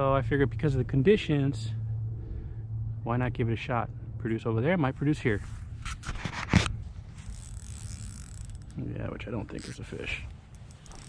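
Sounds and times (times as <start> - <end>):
fishing reel gear whir: 5.9 - 11.0.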